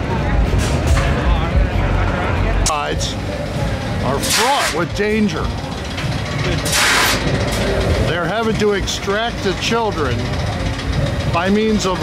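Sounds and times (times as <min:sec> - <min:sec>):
machinery rumbling: 0:00.0 - 0:12.0.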